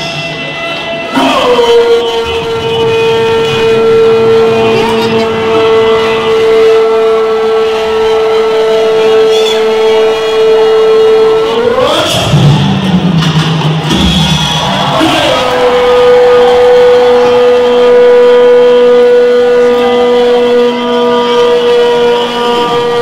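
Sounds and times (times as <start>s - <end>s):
man shouting through loudspeakers: 0.0s - 12.9s, 14.2s - 23.0s
rising cry: 1.0s - 12.3s, 14.0s - 23.0s.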